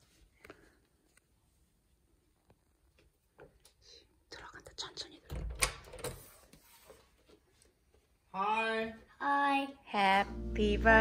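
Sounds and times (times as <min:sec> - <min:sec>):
person whispering: 0:04.3 - 0:05.4.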